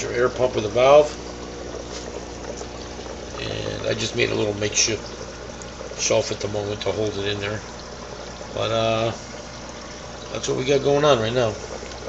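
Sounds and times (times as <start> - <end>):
faint low pump hum: 0.0 - 12.0
trickling air bubbles: 0.0 - 12.0.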